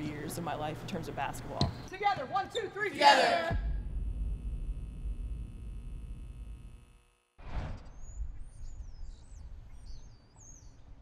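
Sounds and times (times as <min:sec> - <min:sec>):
low hum of empty arena: 0:00.0 - 0:06.8.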